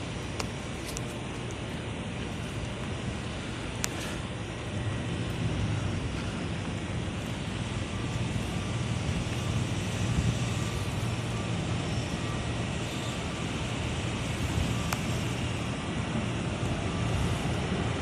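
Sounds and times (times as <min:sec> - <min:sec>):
truck engine drone: 0:00.0 - 0:18.0.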